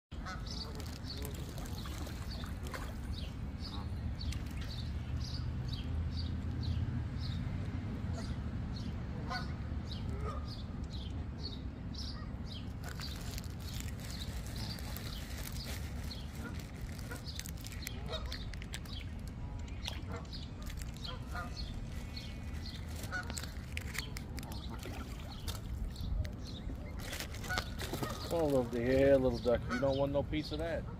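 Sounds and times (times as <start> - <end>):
steady low rumble: 0.1 - 28.9
geese calling: 0.2 - 0.8, 9.2 - 9.5, 16.4 - 18.5, 20.0 - 23.6, 26.7 - 30.1
goose calling: 20.0 - 21.7, 23.0 - 23.6, 29.4 - 30.1.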